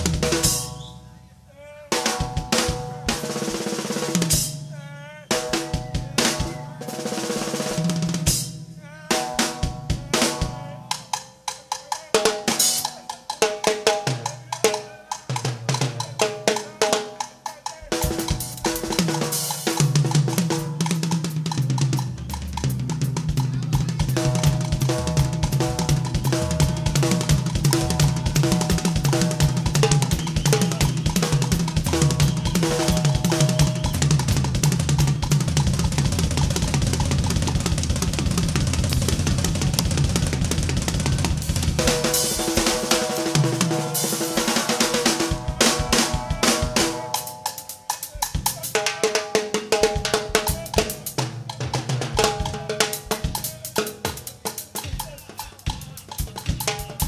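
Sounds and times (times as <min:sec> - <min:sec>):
drum kit solo: 0:00.0 - 0:01.2, 0:01.8 - 0:57.0.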